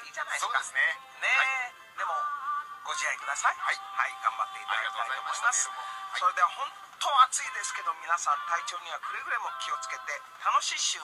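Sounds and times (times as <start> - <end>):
person singing through small speaker: 0.0 - 11.0.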